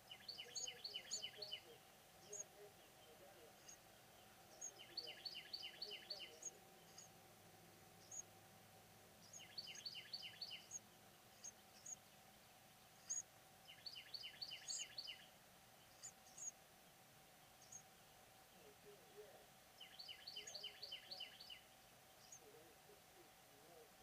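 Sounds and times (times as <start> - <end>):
small birds chirping: 0.0 - 24.0.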